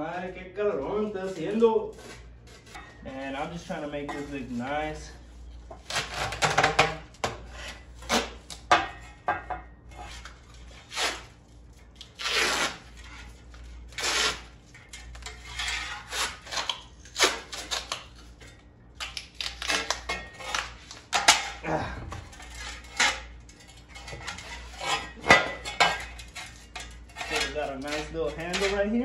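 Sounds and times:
tape ripping off roll: 12.0s - 13.0s, 13.9s - 14.5s.

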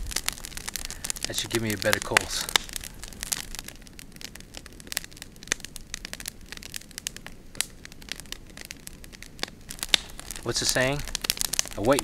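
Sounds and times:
campfire crackling and popping: 0.0s - 12.0s.

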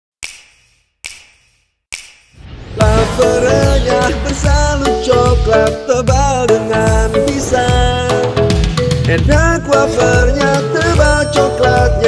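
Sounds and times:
sharp snaps: 0.2s - 2.4s.

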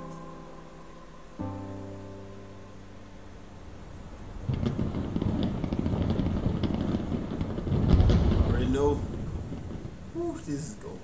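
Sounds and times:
low rumble: 2.6s - 10.4s
sharp crackles: 3.8s - 11.0s.

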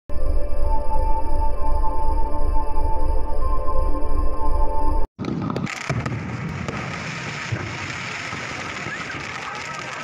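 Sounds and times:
fireworks popping and crackling: 5.2s - 10.0s.

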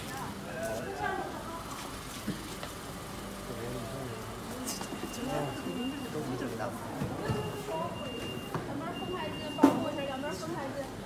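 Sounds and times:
distant indistinct chatter: 0.0s - 11.0s.

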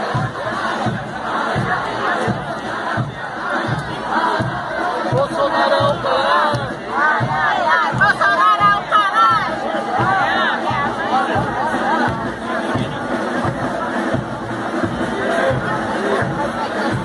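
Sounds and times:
crowd shouting and singing: 0.0s - 17.0s
steady low drum beat: 0.0s - 17.0s.

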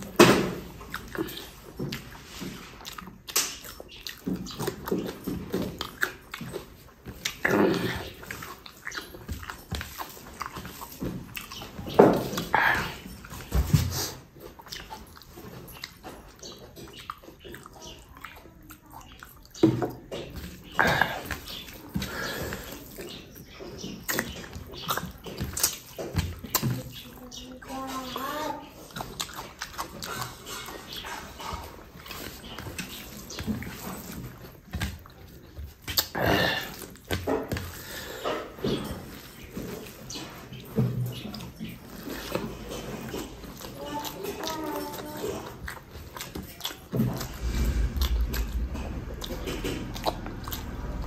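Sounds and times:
person chewing with wet smacking: 0.0s - 51.0s.

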